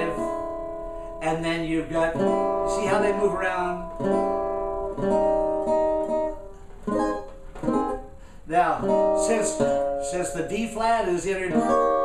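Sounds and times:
tenor banjo strumming chords: 0:00.0 - 0:12.0.

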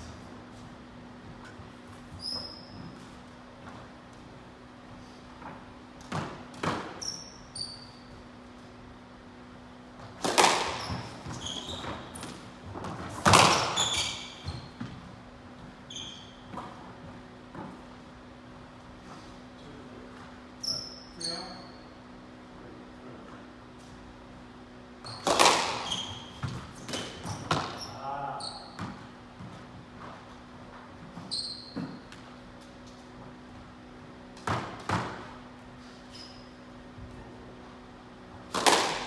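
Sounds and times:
court shoes squeaking on wood: 0:01.2 - 0:03.9, 0:05.4 - 0:08.3, 0:10.0 - 0:17.9, 0:20.2 - 0:22.0, 0:25.0 - 0:32.7, 0:34.5 - 0:37.0
squash ball bouncing: 0:10.1 - 0:15.0, 0:25.2 - 0:27.8
squash ball hit hard: 0:13.2 - 0:13.8.

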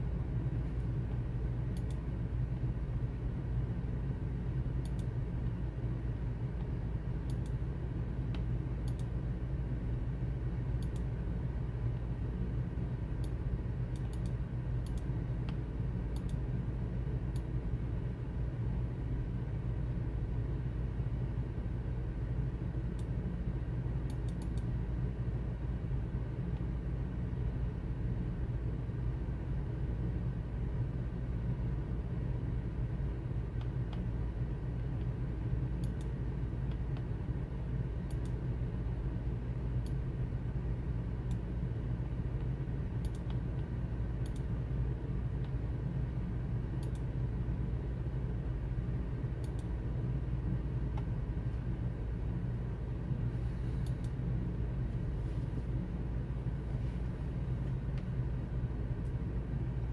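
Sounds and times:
steady low hum: 0:00.0 - 0:59.9
computer mouse clicks: 0:01.7 - 0:02.0, 0:04.8 - 0:05.1, 0:07.2 - 0:07.6, 0:08.3 - 0:09.1, 0:10.8 - 0:11.1, 0:13.2 - 0:16.4, 0:24.1 - 0:24.7, 0:35.8 - 0:37.1, 0:38.1 - 0:38.4, 0:42.4 - 0:44.5, 0:46.8 - 0:47.1, 0:49.4 - 0:49.7, 0:53.8 - 0:54.2.

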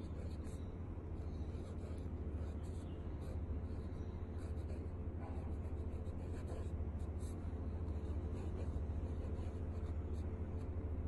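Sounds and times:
pen nib scratching paper: 0:00.0 - 0:00.6, 0:01.2 - 0:10.8
steady low hum: 0:00.0 - 0:11.0.

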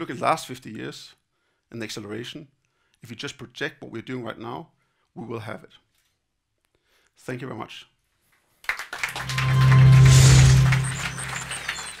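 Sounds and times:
chiming high notes: 0:09.1 - 0:12.0
low held musical note: 0:09.2 - 0:11.8.

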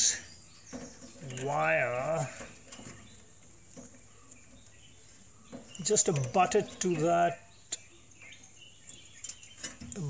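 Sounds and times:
faint bird chirps: 0:00.0 - 0:10.0
man speaking: 0:01.2 - 0:02.5, 0:05.8 - 0:07.4.

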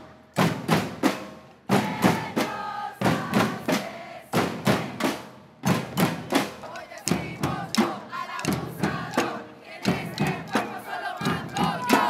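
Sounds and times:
drums struck with sticks: 0:00.4 - 0:12.0
women shouting a protest chant: 0:06.6 - 0:12.0.

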